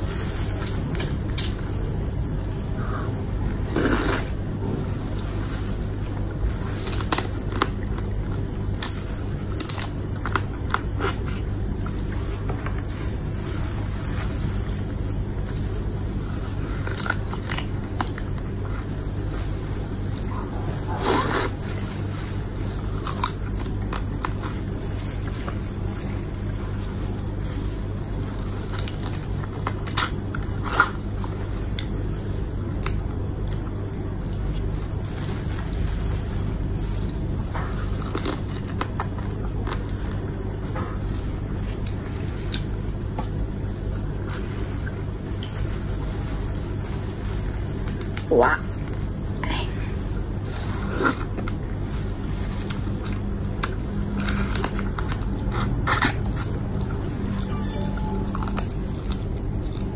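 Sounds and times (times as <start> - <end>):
crab shell crunching: 0.0 - 59.9
steady low hum: 0.0 - 59.9
wet squishing: 0.0 - 59.9.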